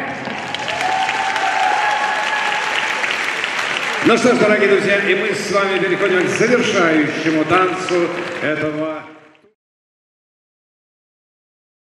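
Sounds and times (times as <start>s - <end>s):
man's voice: 4.0s - 9.3s.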